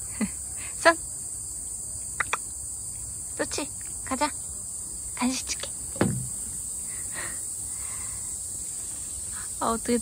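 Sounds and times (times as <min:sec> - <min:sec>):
insects singing: 0:00.0 - 0:10.0.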